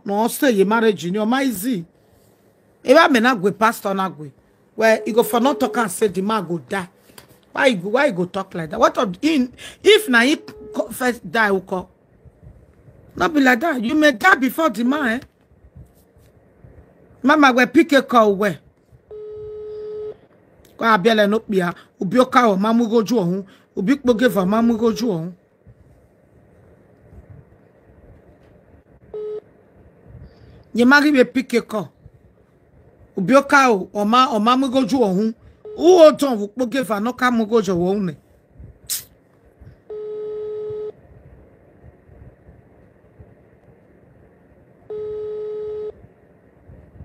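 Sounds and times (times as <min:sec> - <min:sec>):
person speaking: 0:00.0 - 0:02.0, 0:02.8 - 0:12.0, 0:13.1 - 0:15.4, 0:17.2 - 0:18.7, 0:20.7 - 0:25.4, 0:30.7 - 0:32.0, 0:33.1 - 0:38.3
telephone line beep: 0:04.8 - 0:06.5, 0:09.9 - 0:11.2, 0:19.1 - 0:20.3, 0:29.1 - 0:29.5, 0:35.5 - 0:36.2, 0:39.9 - 0:41.0, 0:44.9 - 0:46.0.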